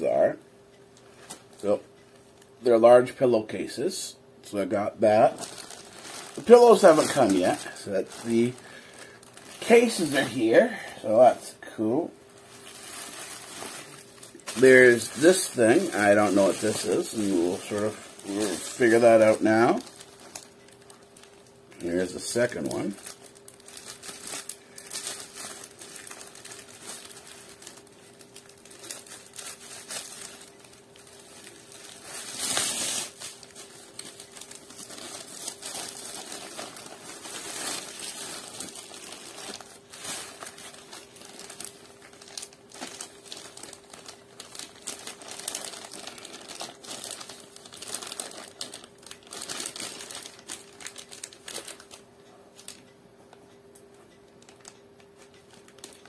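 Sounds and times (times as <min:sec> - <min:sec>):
packaging crinkling and tearing: 0:05.0 - 0:11.2, 0:12.4 - 0:52.0, 0:54.4 - 0:56.0.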